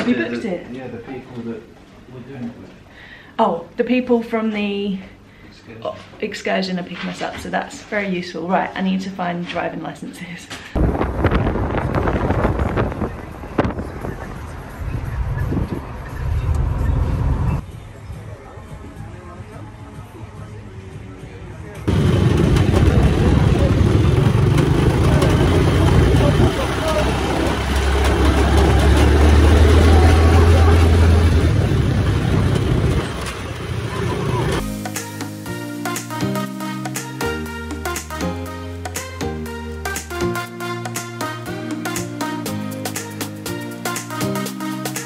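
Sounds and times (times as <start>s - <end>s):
wind buffeting microphone: 10.8s - 17.7s, 21.9s - 34.6s
car road noise: 11.0s - 17.7s, 21.9s - 34.7s
buggy engine running: 21.9s - 34.6s.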